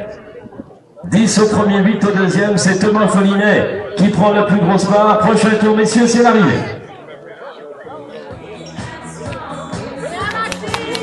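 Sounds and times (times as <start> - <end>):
faint music: 0.0 - 11.0
spectators talking: 0.0 - 11.0.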